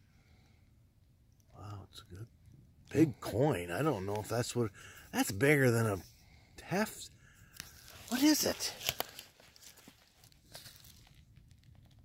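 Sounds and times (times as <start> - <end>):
faint soft rustles and ticks: 7.5 - 12.0.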